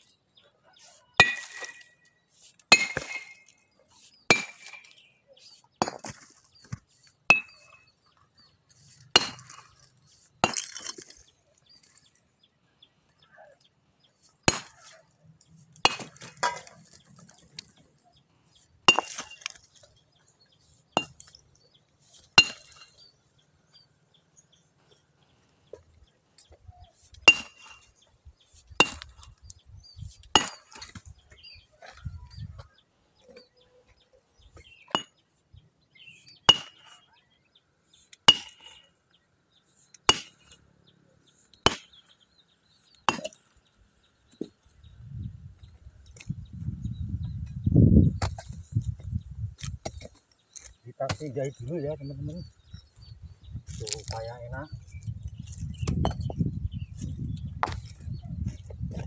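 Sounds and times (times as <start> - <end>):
sledgehammer striking stone: 1.2 - 1.9, 2.7 - 3.5, 4.3 - 5.0, 7.3 - 7.7, 9.2 - 9.7, 10.4 - 11.1, 18.9 - 19.6, 27.2 - 27.8, 36.5 - 36.9, 38.3 - 38.7, 40.1 - 40.5, 41.7 - 42.0, 43.1 - 43.4.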